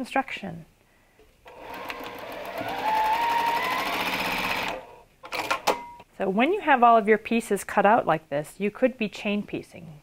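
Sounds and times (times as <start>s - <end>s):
sewing machine stitching: 1.5s - 5.6s.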